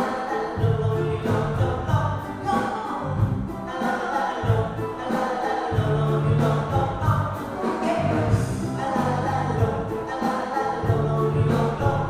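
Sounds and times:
live band playing: 0.0s - 12.0s
men singing together: 0.0s - 12.0s.

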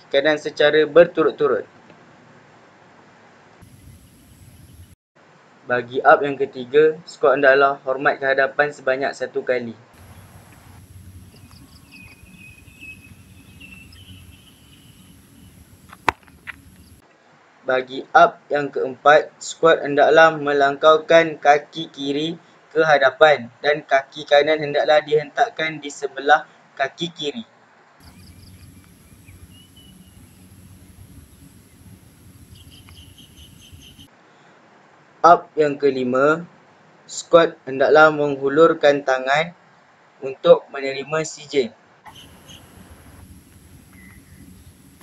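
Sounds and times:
insects buzzing: 3.6s - 5.0s, 10.0s - 17.0s, 28.0s - 34.1s, 42.1s - 45.0s
bird chirping: 3.7s - 5.0s, 10.0s - 17.0s, 28.0s - 34.1s, 42.1s - 44.8s
low rumble: 10.0s - 17.0s, 28.0s - 34.1s.

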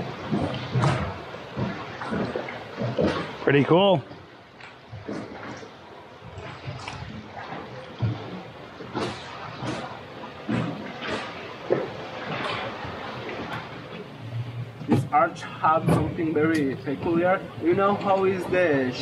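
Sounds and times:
small splashes: 0.0s - 15.2s
sea water lapping against rocks: 0.0s - 19.0s.

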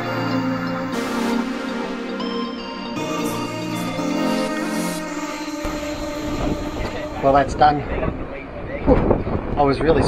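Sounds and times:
background music: 0.0s - 8.5s
wind buffeting microphone: 6.1s - 10.0s.

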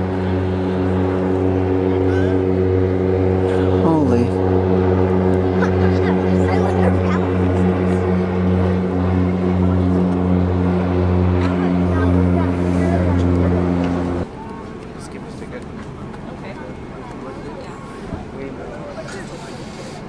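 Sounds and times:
ship's horn deep blast: 0.0s - 14.3s
low crowd chatter: 0.0s - 20.0s.

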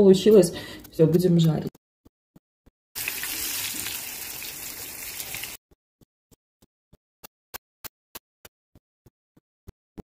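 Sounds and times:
fish sizzling in hot oil: 3.0s - 5.6s.

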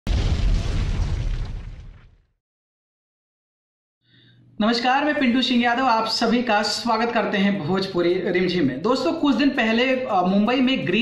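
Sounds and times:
explosion boom: 0.0s - 2.3s.

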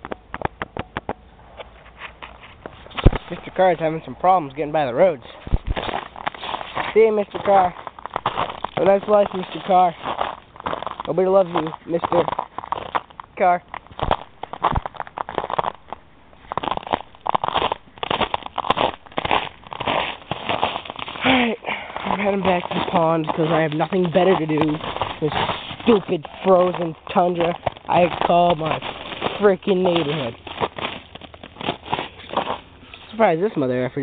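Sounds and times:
footsteps crunching through snow: 1.4s - 33.9s.

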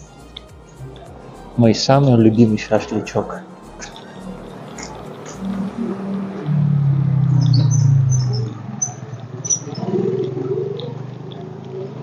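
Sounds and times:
low drone: 0.4s - 12.0s
small birds chirping: 7.2s - 12.0s.

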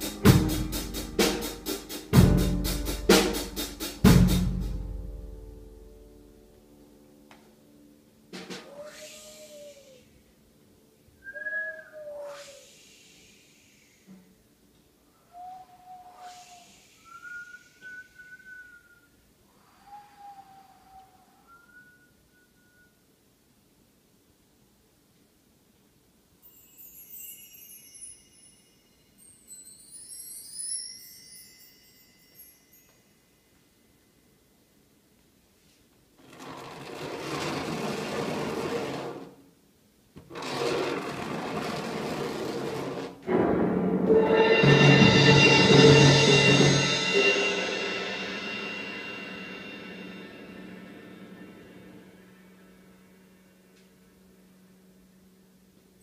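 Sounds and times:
breathy rush of air: 8.8s - 10.2s, 12.0s - 14.4s, 15.2s - 18.2s
person whistling: 11.2s - 12.8s, 15.3s - 19.2s, 19.8s - 23.0s.

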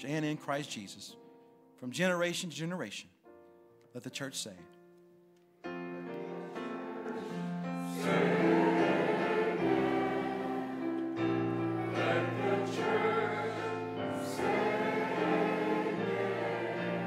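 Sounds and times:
sustained keyboard chords: 5.6s - 17.0s
group of voices singing: 6.1s - 17.0s.

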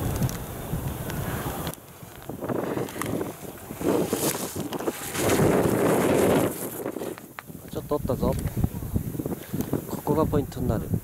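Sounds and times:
wind buffeting microphone: 0.0s - 11.0s
ski edges scraping hard snow: 1.1s - 7.5s.

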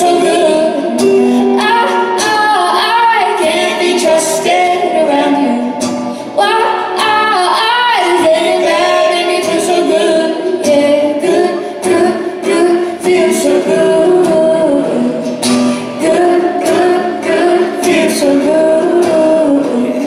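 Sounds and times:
strummed guitars: 0.0s - 20.0s
woman singing: 0.0s - 20.0s.

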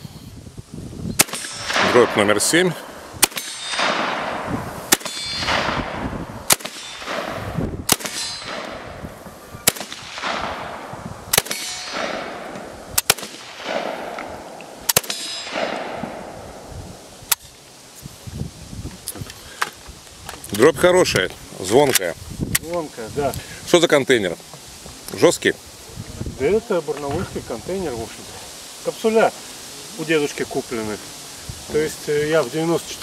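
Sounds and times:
shot clanging on steel targets: 1.2s - 7.3s, 7.9s - 8.9s, 11.3s - 14.3s, 14.9s - 16.2s
shotgun shots: 1.2s - 9.0s, 9.6s - 16.6s.

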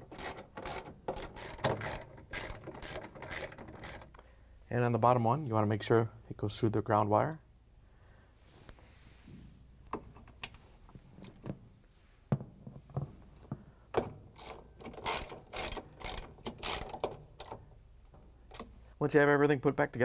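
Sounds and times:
hand ratchet clicking: 0.0s - 4.2s, 14.3s - 17.6s.

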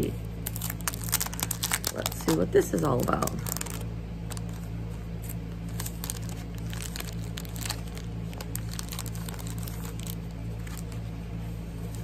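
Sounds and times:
plastic packet crinkling: 0.0s - 11.0s
steady low hum: 0.0s - 12.0s.

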